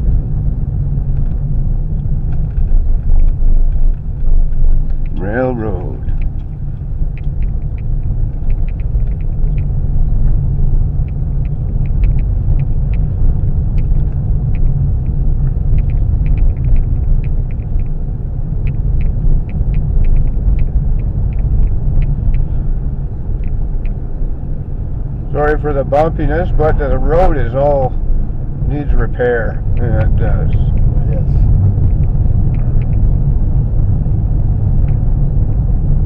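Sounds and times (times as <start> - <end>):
car tyres and engine rumble: 0.0 - 36.0
light ticks and rattles: 1.1 - 24.0, 28.8 - 33.2.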